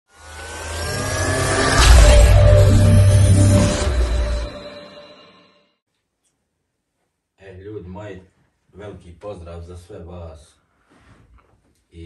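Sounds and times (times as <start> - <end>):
whooshing hit: 0.2 - 5.2.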